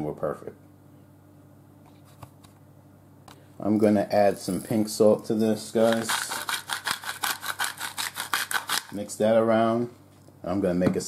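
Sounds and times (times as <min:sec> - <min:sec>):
salt grinder rasping: 0:05.6 - 0:09.0.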